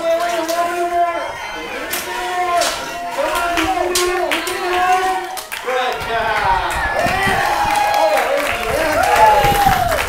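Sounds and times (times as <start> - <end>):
crowd cheering and calling out: 0.0 - 10.0
long drawn-out shouts: 0.7 - 10.0.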